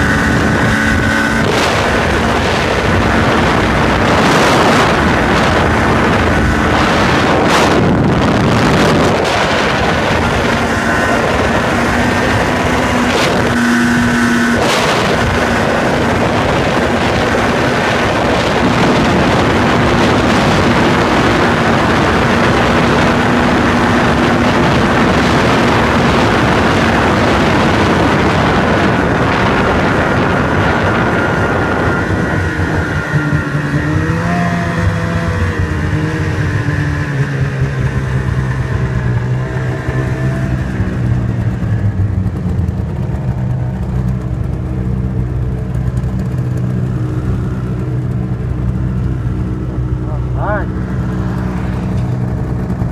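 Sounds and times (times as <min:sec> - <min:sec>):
snowmobile engine running: 0:00.0 - 0:52.9.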